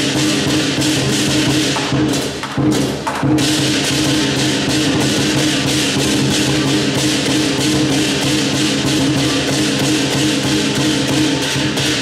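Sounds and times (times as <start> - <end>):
crashing cymbals: 0.0 - 12.0
large drum beaten fast: 0.0 - 12.0.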